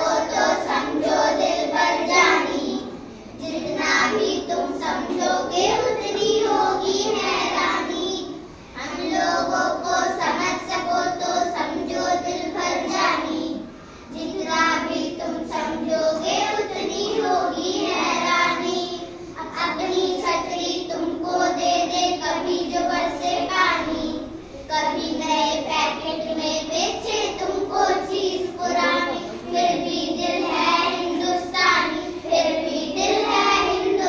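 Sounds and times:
children singing in unison: 0:00.0 - 0:34.0.

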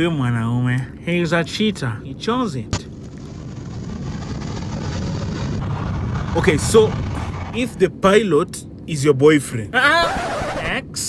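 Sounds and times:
jet airliner flying past: 0:03.0 - 0:08.1.

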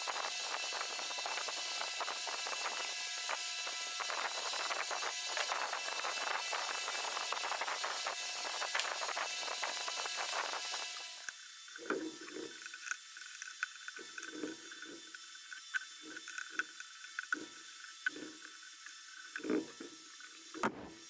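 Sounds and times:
screwdriver scraping: 0:00.0 - 0:21.0.

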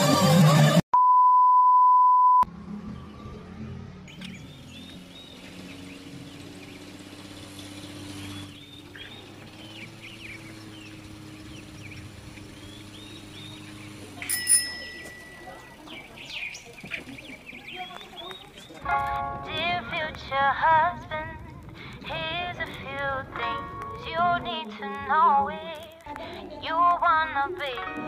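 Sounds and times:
test tone beep: 0:01.0 - 0:02.5
birds chirping: 0:02.7 - 0:20.5.

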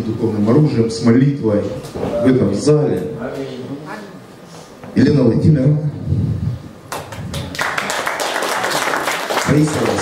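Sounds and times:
congregation applauding: 0:06.9 - 0:10.0.

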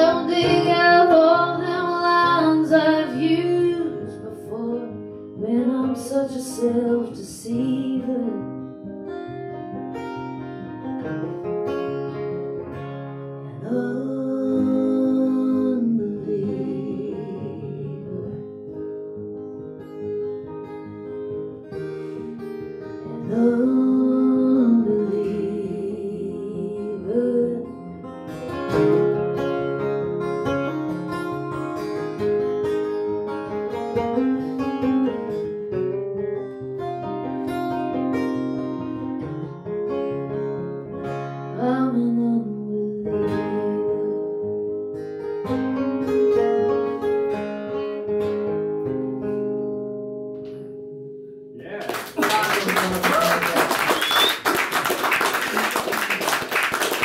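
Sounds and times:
acoustic guitars playing country: 0:00.0 - 0:57.0.

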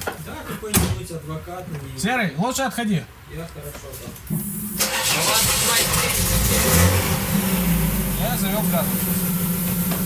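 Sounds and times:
car engine starting and running: 0:04.5 - 0:10.0.

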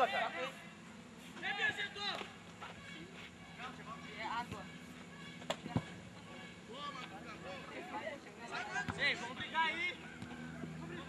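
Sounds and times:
distant players shouting: 0:00.0 - 0:11.0.

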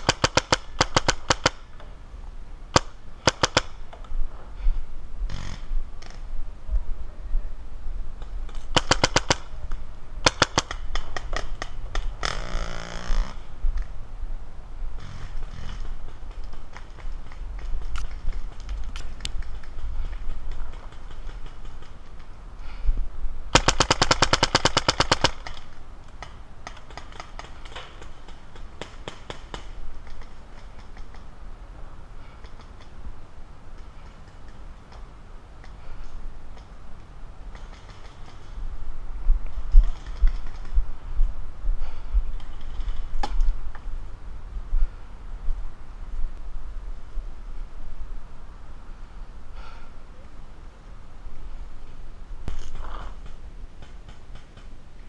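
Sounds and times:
paintball markers firing: 0:00.0 - 0:01.6, 0:02.8 - 0:03.8, 0:08.6 - 0:09.5.

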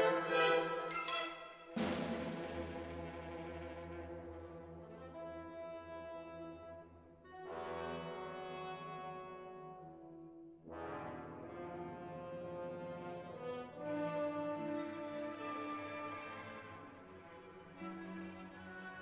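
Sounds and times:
orchestral brass chords: 0:00.0 - 0:10.0, 0:10.6 - 0:17.0.

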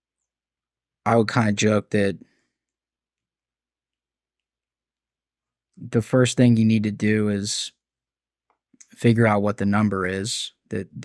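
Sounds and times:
person speaking: 0:01.1 - 0:02.2, 0:05.8 - 0:07.7, 0:08.8 - 0:11.0.

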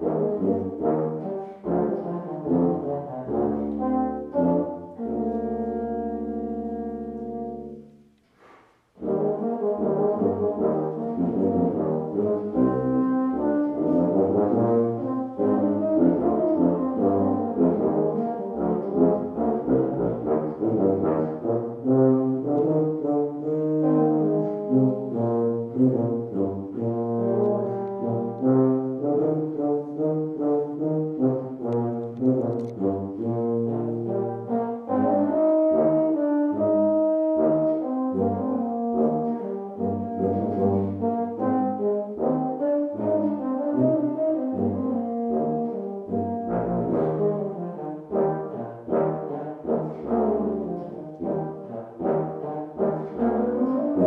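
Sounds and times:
euphonium melody: 0:00.0 - 0:08.1, 0:09.0 - 0:54.0
tuba low notes: 0:00.0 - 0:54.0.

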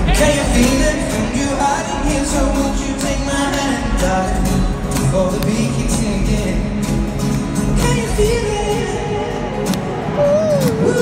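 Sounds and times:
person singing: 0:00.0 - 0:06.7, 0:07.7 - 0:11.0
live concert music: 0:00.0 - 0:11.0.

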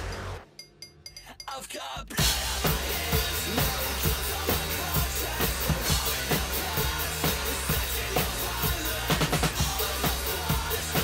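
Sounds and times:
metalcore band music: 0:01.5 - 0:11.0
drum kit kick and snare hits: 0:02.2 - 0:11.0.

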